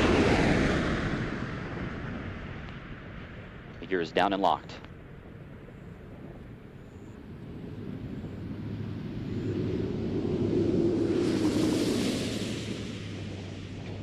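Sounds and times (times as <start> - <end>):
rushing air noise: 0.0 - 4.0, 5.3 - 14.0
steady low hum: 0.0 - 14.0.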